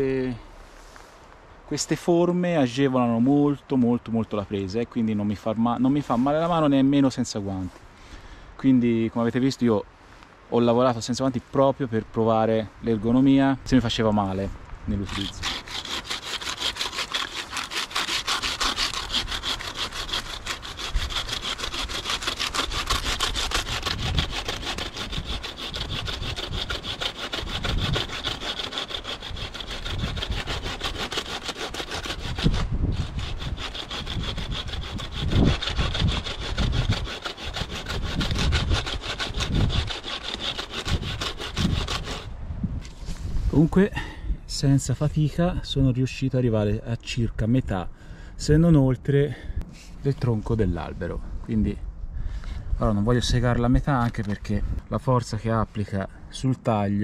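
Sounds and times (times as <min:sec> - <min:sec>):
saw cutting through tree trunk: 0:14.9 - 0:42.3.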